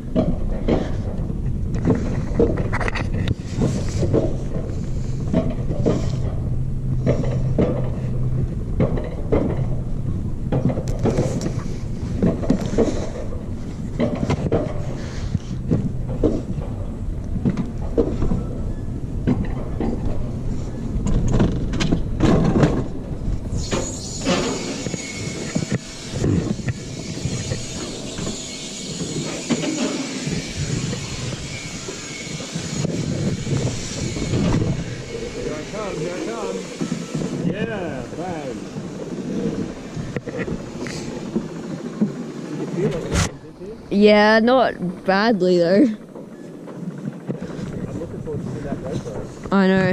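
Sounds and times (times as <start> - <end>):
coaster sled rumbling on rail: 0.0 - 49.9.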